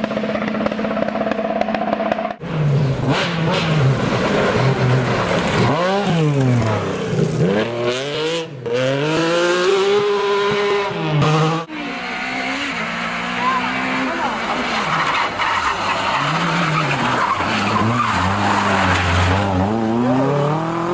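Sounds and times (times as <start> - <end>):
rally car engines revving: 0.0 - 20.9.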